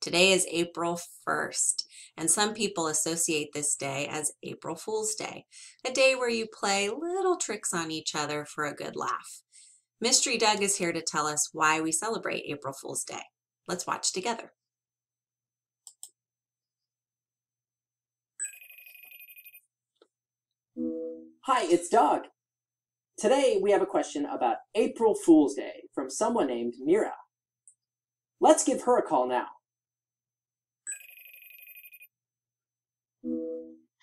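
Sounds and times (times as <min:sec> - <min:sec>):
electronic telephone ring: 0:18.4 - 0:19.7, 0:30.9 - 0:32.2
held musical tone: 0:20.8 - 0:21.5, 0:33.2 - 0:33.8.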